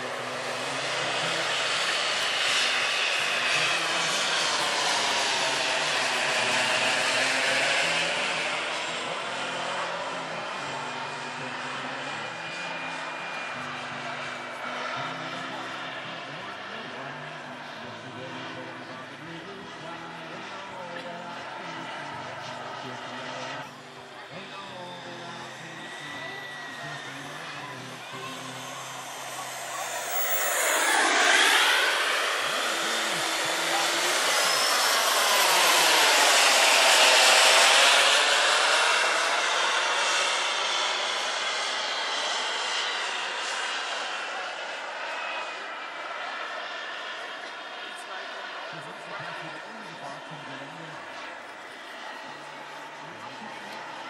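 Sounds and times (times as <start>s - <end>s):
model jet engines rushing and whining: 0.0s - 54.0s.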